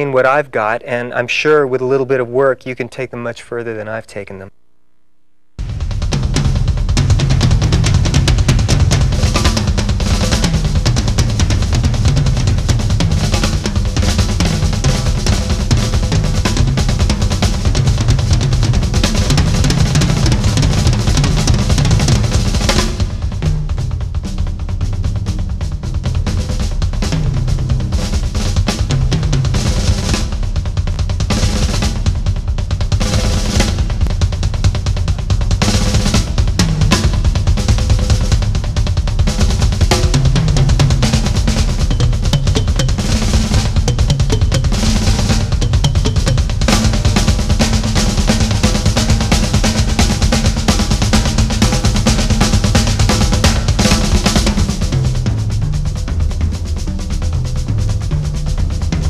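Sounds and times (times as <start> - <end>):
tom and snare fills: 0.0 - 59.0
fast double bass drums: 5.6 - 59.0.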